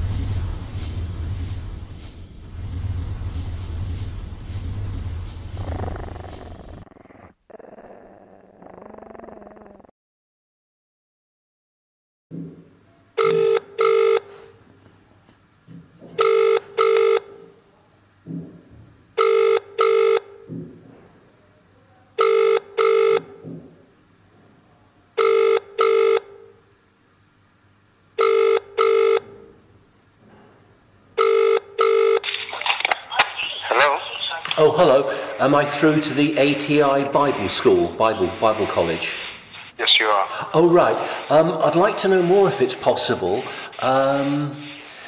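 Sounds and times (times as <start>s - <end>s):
telephone ringing tone: 13.2s - 14.5s, 16.2s - 17.5s, 19.2s - 20.4s, 22.2s - 23.4s, 25.2s - 26.5s, 28.2s - 29.5s, 31.2s - 32.2s.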